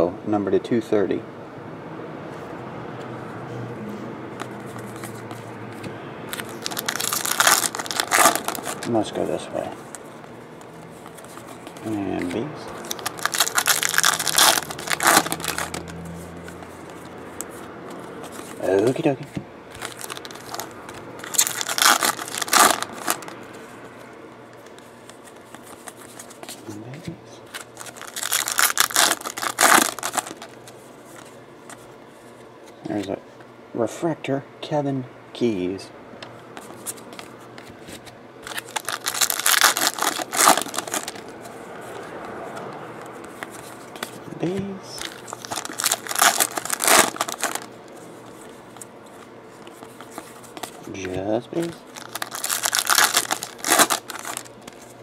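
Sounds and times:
cards rustling: 4.3s - 33.1s, 36.6s - 55.0s
foil wrapper crinkling and tearing: 6.3s - 9.2s, 11.2s - 16.0s, 19.8s - 23.4s, 27.5s - 30.6s, 38.4s - 41.3s, 44.9s - 47.7s, 49.7s - 54.9s
plastic wrapper crinkling: 6.3s - 17.2s, 19.8s - 23.4s, 27.4s - 31.8s, 38.0s - 41.4s, 44.9s - 55.0s.

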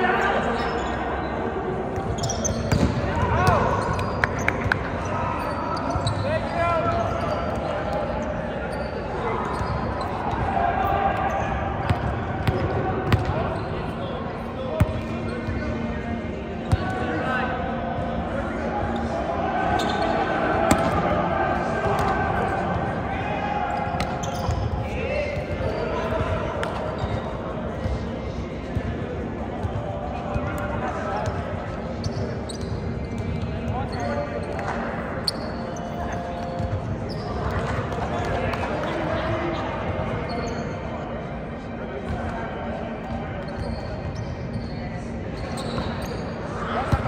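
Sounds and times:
players chattering and calling: 0.0s - 47.0s.

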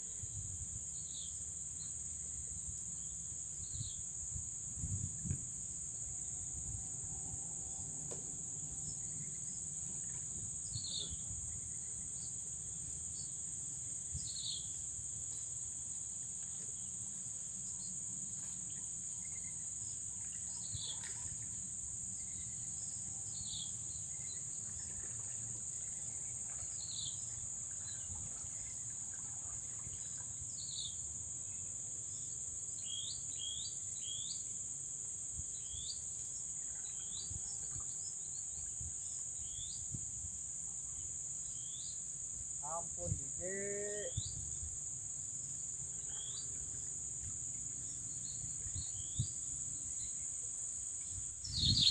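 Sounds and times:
high-pitched insect drone: 40.9s - 44.8s
bird chirps: 51.1s - 51.9s.

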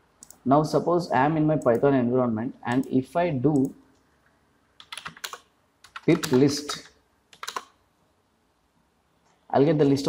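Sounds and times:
computer keyboard keystrokes: 4.8s - 7.8s.

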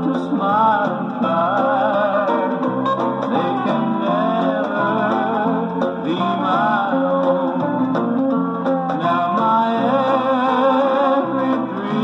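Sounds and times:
country song from vinyl record: 0.0s - 12.0s.

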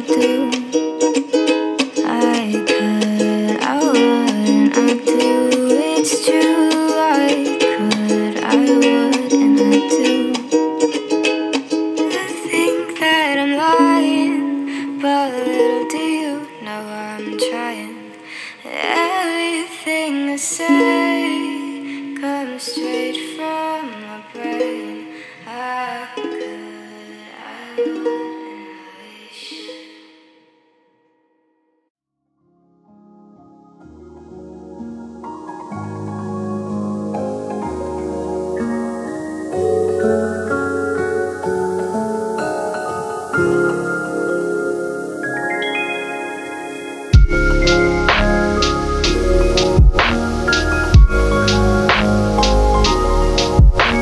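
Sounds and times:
ukulele music: 0.0s - 30.2s, 33.8s - 54.0s.

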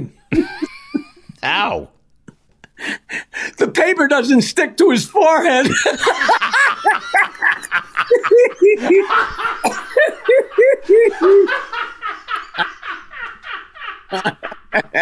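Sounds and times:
people laughing hard: 0.3s - 1.4s, 5.5s - 15.0s.

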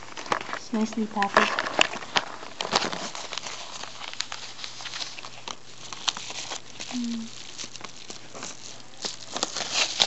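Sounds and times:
paper envelope crinkling: 0.0s - 10.0s.

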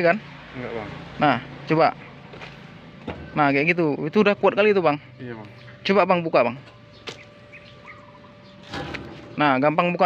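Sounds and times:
faint bird chirps: 6.6s - 8.7s.

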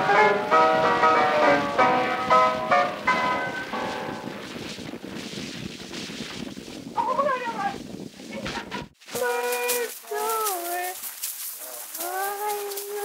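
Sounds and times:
tune from a record: 0.0s - 11.0s
record surface hiss and crackle: 0.0s - 13.0s.

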